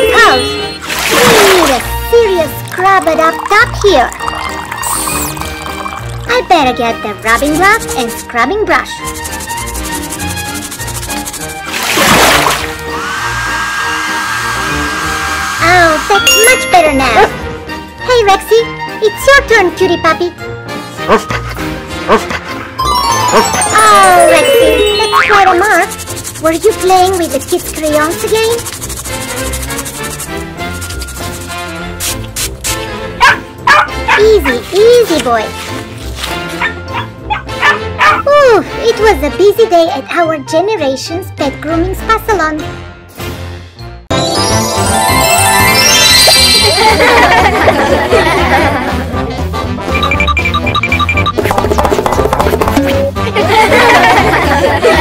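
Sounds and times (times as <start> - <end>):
children's music: 0.0 - 32.0, 32.8 - 55.0
hair dryer whining: 12.8 - 16.1
dog yipping: 33.2 - 34.7, 36.6 - 38.3.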